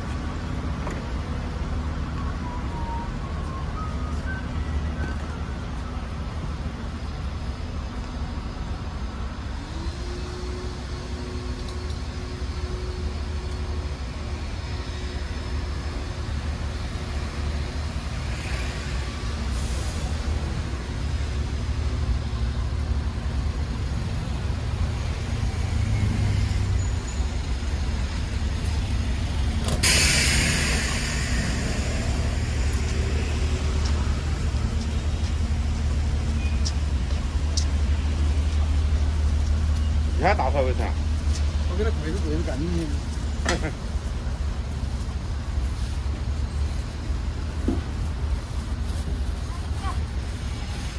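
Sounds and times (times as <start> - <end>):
traffic engine rumble: 0.0 - 50.9
air brake hiss: 18.2 - 20.4, 29.7 - 33.6.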